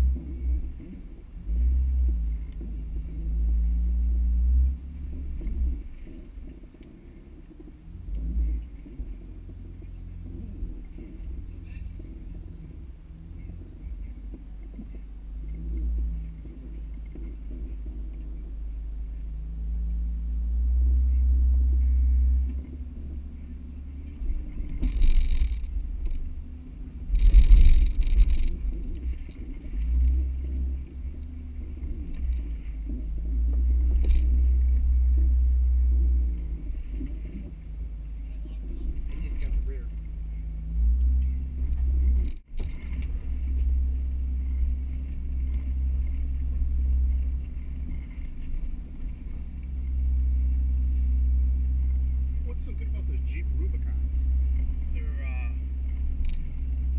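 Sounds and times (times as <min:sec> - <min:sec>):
truck engine running: 0:00.0 - 0:56.9
scraping and knocking over rocks: 0:27.0 - 0:30.2.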